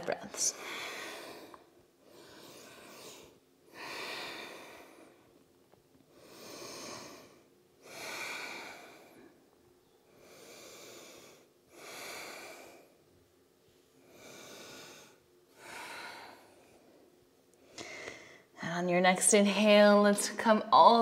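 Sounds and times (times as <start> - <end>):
woman breathing slowly and deeply: 0.5 - 5.5, 6.1 - 13.1, 13.8 - 18.6.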